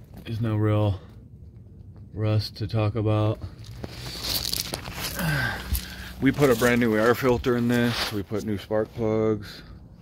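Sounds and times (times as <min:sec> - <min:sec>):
gravel crunching and scraping: 0:00.0 - 0:09.8
clothing rustling: 0:03.6 - 0:08.5.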